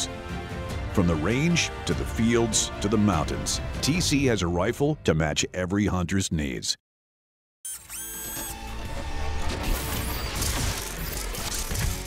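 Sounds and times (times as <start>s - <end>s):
dense music: 0.0s - 5.5s
sound effects: 7.7s - 12.0s.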